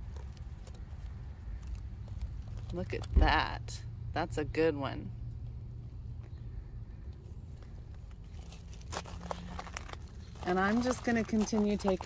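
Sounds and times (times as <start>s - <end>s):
steady low rumble: 0.0s - 11.1s
plant rustling: 7.5s - 12.0s.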